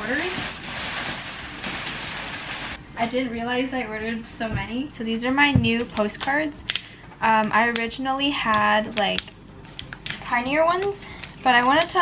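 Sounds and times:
bubble wrap crinkling and rustling: 0:00.0 - 0:02.8.

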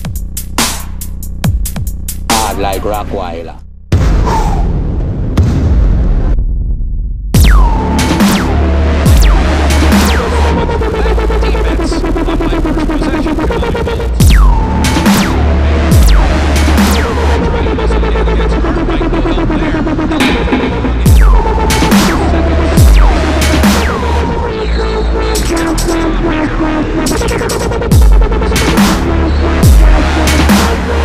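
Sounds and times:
dubstep track: 0:00.0 - 0:03.6, 0:07.4 - 0:31.0
heavy sub-bass: 0:00.0 - 0:31.0.

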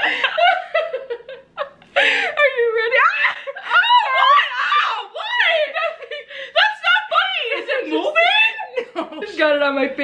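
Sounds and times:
women laughing: 0:00.0 - 0:06.7, 0:07.3 - 0:09.6.

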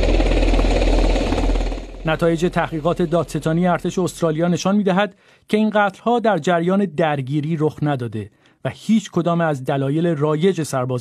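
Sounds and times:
helicopter rotor chop: 0:00.0 - 0:04.6.

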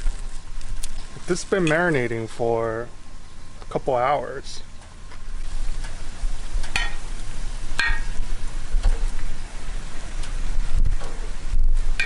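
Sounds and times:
fish sizzling on grill: 0:00.0 - 0:12.0.

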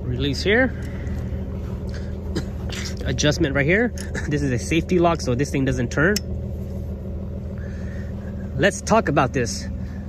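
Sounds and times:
pickup engine idling: 0:00.0 - 0:10.0.

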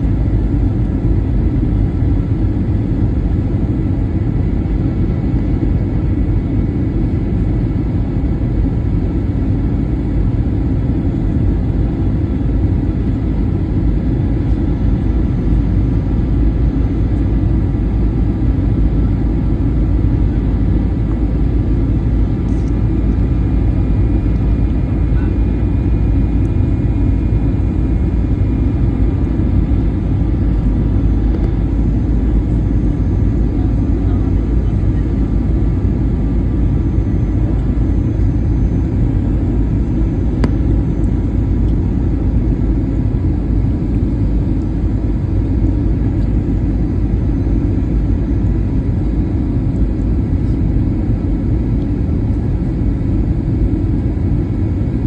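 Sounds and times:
airliner cabin engine rumble: 0:00.0 - 0:55.0.

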